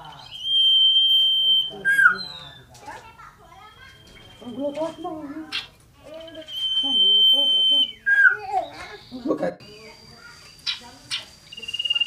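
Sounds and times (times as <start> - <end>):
bird whistling song: 0.0 - 2.8, 3.6 - 12.0.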